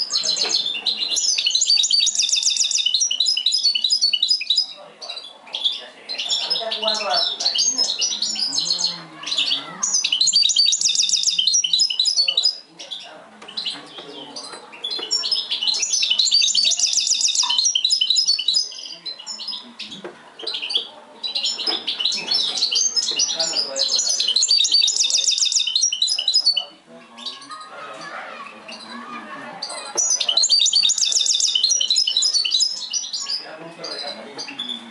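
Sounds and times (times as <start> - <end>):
finch twittering song: 0.0 - 27.7, 29.6 - 34.9.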